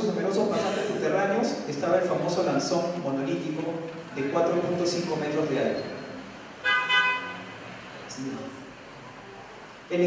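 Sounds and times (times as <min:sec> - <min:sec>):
vehicle horn honk: 0:06.6 - 0:07.6.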